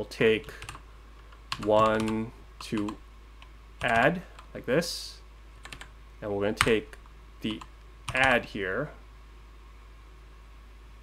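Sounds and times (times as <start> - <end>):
constant low hum: 0.0 - 11.0
faint background hiss: 0.0 - 11.0.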